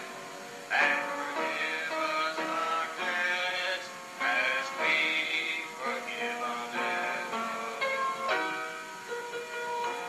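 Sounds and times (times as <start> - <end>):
song with sung melody: 0.0 - 10.0.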